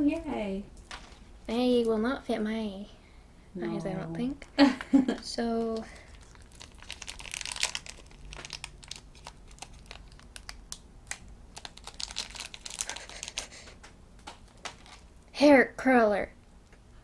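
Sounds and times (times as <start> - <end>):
plastic wrapper crinkling: 5.6 - 15.1.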